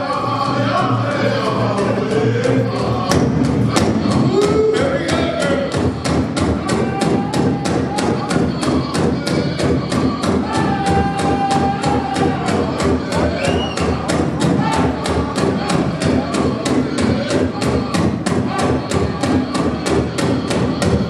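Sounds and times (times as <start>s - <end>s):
group of voices singing: 0.0s - 21.0s
large drum beating: 0.0s - 21.0s.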